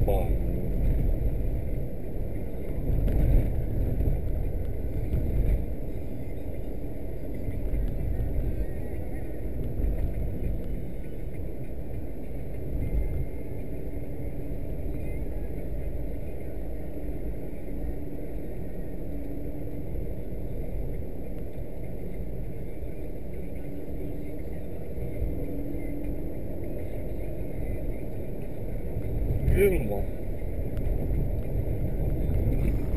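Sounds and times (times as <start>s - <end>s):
faint engine hum: 0.0s - 32.9s
road noise inside moving car: 0.0s - 32.9s.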